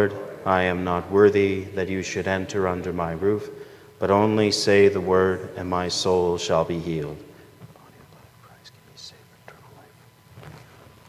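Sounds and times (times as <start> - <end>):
man whispering a prayer: 0.0 - 10.8.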